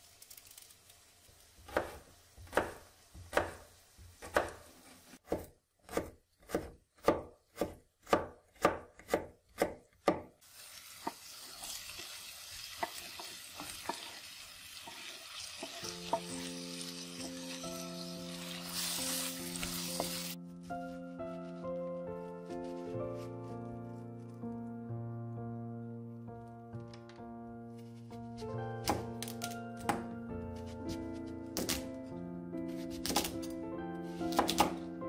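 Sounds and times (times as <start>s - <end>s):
vegetables frying hiss: 0.0s - 5.2s, 10.4s - 20.4s
knife chopping on wooden board: 1.7s - 10.3s, 32.8s - 33.3s, 34.3s - 34.8s
soft music: 14.9s - 35.0s.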